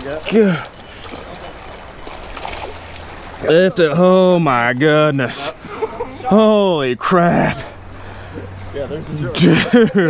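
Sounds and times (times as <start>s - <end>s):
fishing reel gears ticking: 0.0s - 2.7s.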